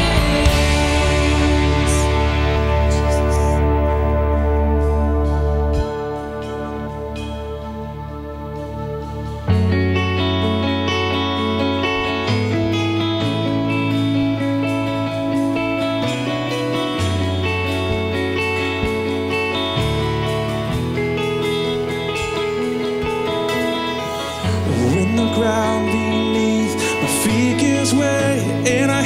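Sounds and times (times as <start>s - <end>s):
deep bass notes: 0.0s - 29.0s
picked acoustic guitar: 0.0s - 29.0s.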